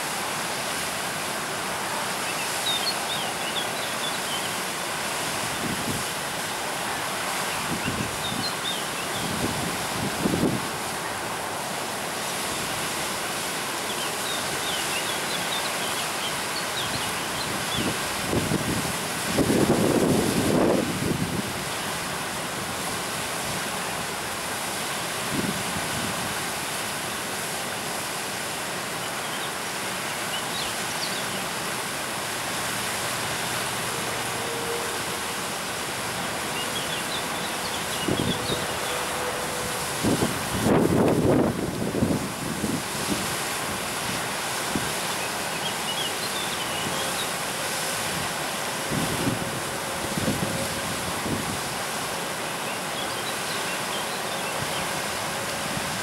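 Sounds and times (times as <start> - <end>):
whitewater rushing over rapids: 0.0 - 56.0
wind rumble on microphone: 7.6 - 8.5, 9.1 - 10.8, 17.4 - 21.7, 39.7 - 45.0, 48.9 - 51.8.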